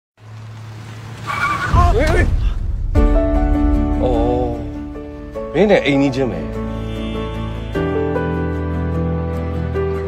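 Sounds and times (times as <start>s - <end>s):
car tyres squealing: 1.1s - 2.2s.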